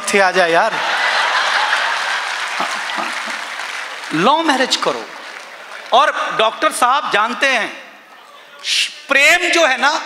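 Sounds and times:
audience applauding: 0.8s - 6.8s.

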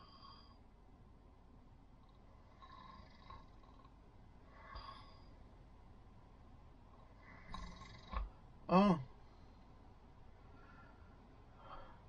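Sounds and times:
faint snoring: 2.0s - 5.3s, 7.0s - 8.3s.

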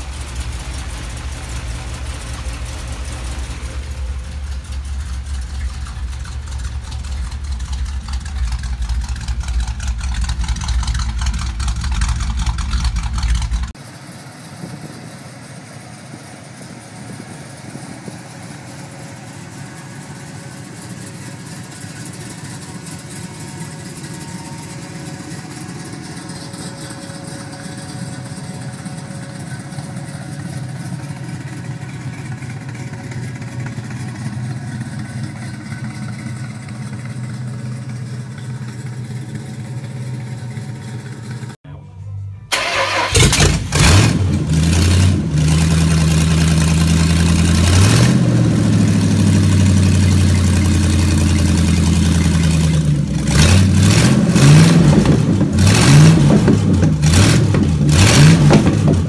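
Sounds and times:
car engine idling: 0.0s - 59.0s
loud deep car engine running: 0.0s - 59.0s.

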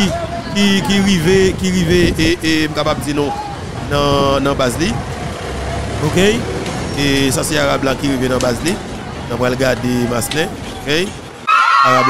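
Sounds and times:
man speaking into a microphone: 0.0s - 5.1s, 6.0s - 11.2s.

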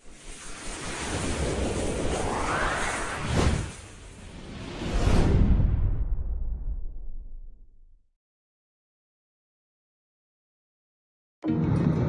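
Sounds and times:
whoosh rush of noise: 0.0s - 7.3s
rising sweep: 0.4s - 3.9s.

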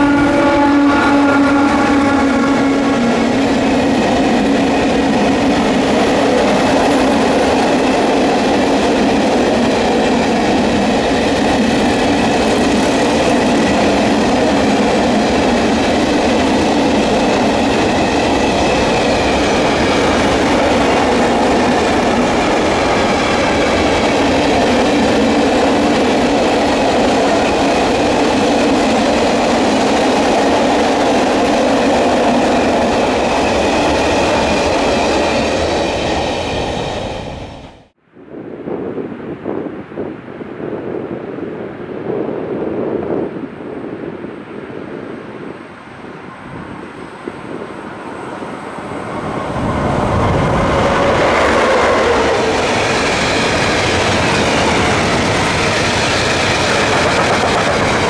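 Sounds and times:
train wheels rumbling on rails: 0.0s - 38.0s, 41.6s - 58.0s.

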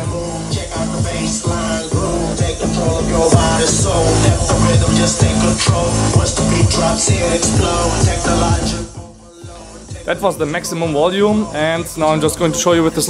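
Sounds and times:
electronic music with heavy bass: 0.0s - 13.0s.

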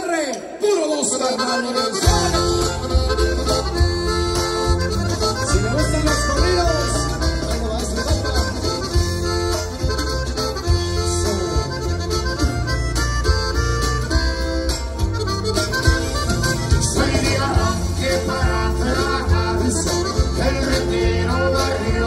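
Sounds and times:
accordion melody: 1.0s - 22.0s
strummed guitar: 1.8s - 22.0s
bass: 2.0s - 22.0s
steady drum beat: 2.0s - 22.0s.

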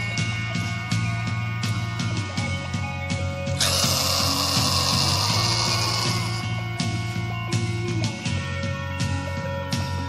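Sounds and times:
bass and drums: 0.0s - 10.0s.

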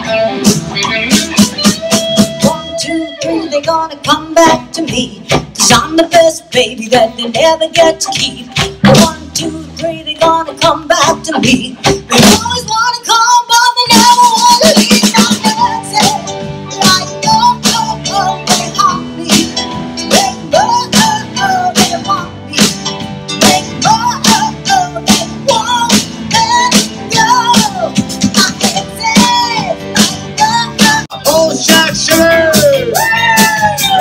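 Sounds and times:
pop-rock band playing: 0.0s - 34.0s.

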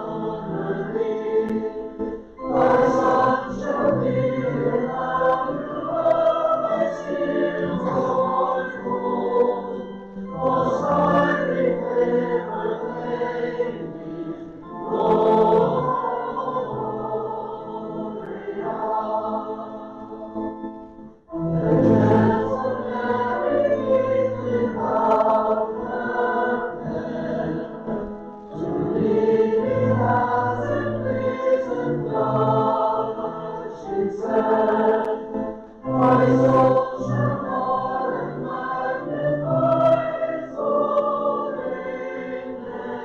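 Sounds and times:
group singing a church song: 0.0s - 43.0s.

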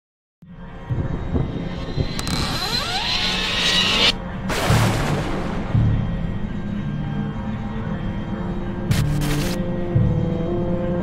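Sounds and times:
low dark music bed: 0.4s - 11.0s.

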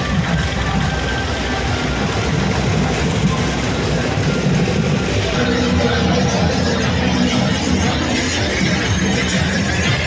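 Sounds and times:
loud bass-heavy music: 0.0s - 10.0s.

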